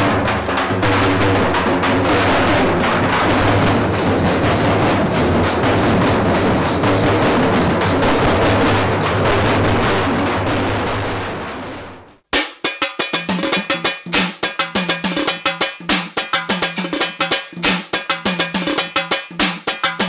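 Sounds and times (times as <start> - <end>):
dhol drums playing fast beat: 0.0 - 20.0.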